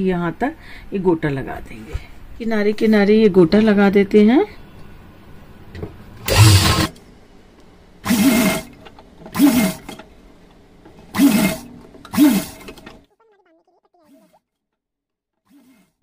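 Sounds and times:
sewing machine stitching: 0:06.2 - 0:07.0, 0:08.0 - 0:13.1.

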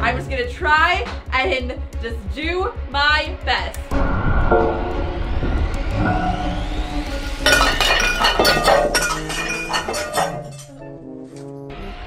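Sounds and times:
background music: 0:00.0 - 0:12.0
plates and glasses crashing: 0:07.4 - 0:10.8.

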